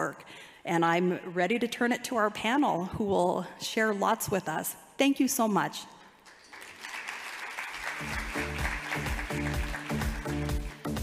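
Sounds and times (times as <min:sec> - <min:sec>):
audience applause: 0:06.3 - 0:11.0
music with pulsing bass beat: 0:08.2 - 0:11.0.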